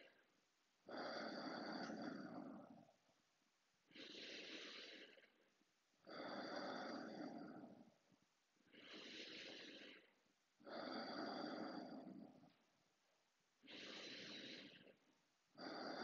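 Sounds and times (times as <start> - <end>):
man breathing deeply: 8.7 - 10.2, 13.7 - 15.0.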